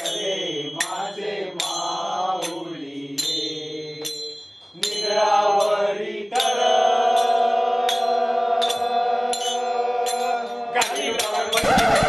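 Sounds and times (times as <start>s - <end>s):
devotional chant singing: 0.0s - 12.0s
ringing metal percussion strike: 3.2s - 12.0s.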